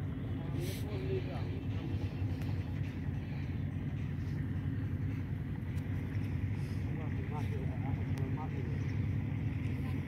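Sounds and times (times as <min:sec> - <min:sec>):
low motor drone: 0:00.0 - 0:10.0.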